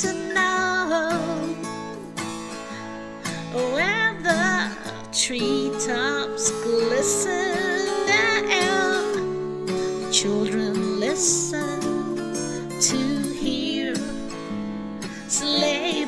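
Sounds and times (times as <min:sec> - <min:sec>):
person singing slow song: 0:00.0 - 0:16.0
strummed acoustic guitar: 0:00.0 - 0:16.0.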